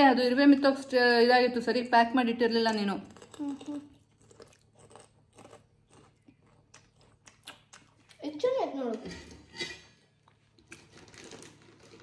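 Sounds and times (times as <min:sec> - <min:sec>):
dishes clinking: 0:09.0 - 0:10.1.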